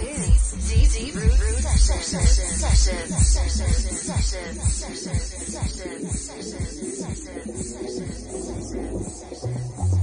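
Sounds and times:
house music kick drum and hi-hats: 0:00.0 - 0:10.0
vocal line over beat: 0:00.0 - 0:10.0.

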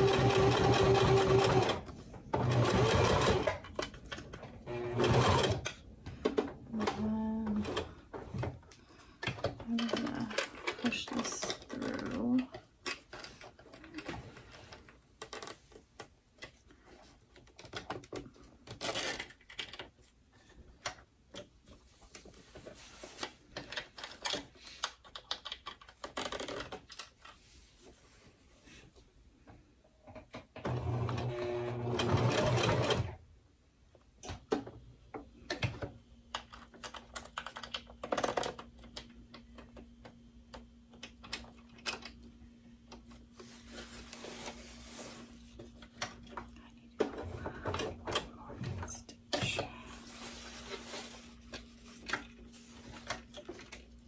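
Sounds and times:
sewing machine stitching: 0:00.0 - 0:03.6, 0:04.6 - 0:05.8, 0:30.6 - 0:33.2
small clicks and handling noises: 0:05.6 - 0:28.0, 0:33.9 - 0:44.6, 0:50.8 - 0:54.0.

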